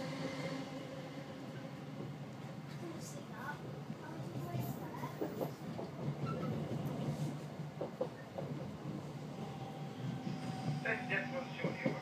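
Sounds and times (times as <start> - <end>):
train hum and rumble: 0.0 - 12.0.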